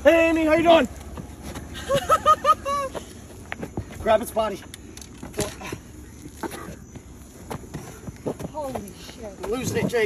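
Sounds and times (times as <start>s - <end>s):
footsteps on asphalt: 0.2s - 10.0s.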